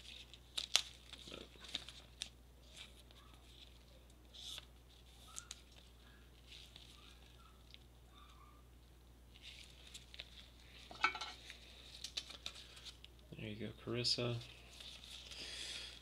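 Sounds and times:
card handling rustles: 0.0 - 7.8, 9.3 - 13.2.

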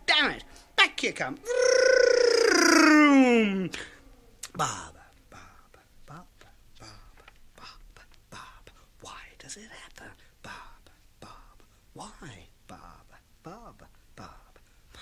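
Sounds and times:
man whispering: 3.5 - 15.0.

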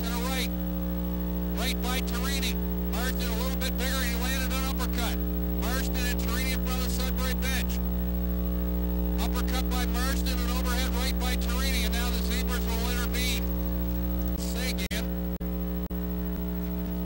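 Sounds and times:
electrical mains hum: 0.0 - 17.0.

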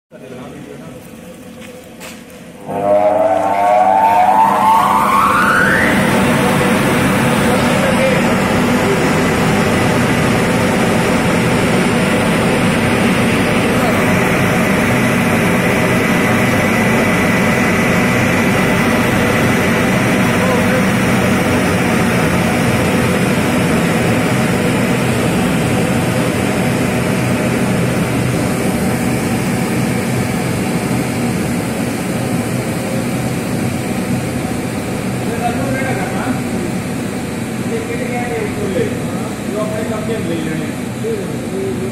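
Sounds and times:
pump motor hum: 0.2 - 41.9
electric water pump whining: 0.3 - 41.8.

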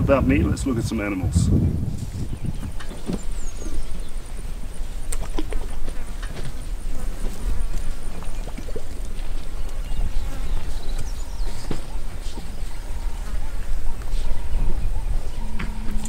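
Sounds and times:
elephant low rumble: 0.0 - 16.0.

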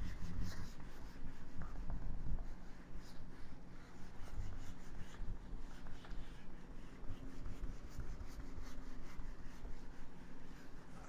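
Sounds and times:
eraser rubbing whiteboard: 0.0 - 11.0.

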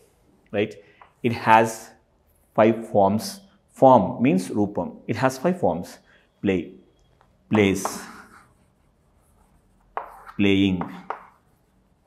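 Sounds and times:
chalk writing on chalkboard: 7.6 - 12.0.

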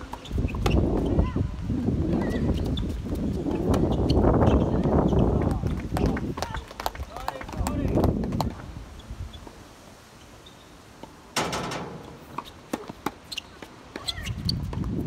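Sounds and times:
racket striking ball: 11.4 - 13.2
tennis ball bouncing: 11.4 - 13.4.

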